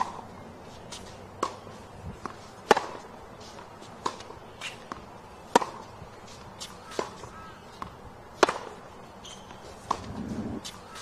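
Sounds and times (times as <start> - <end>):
racket hitting tennis ball: 1.0 - 8.8, 9.4 - 11.0.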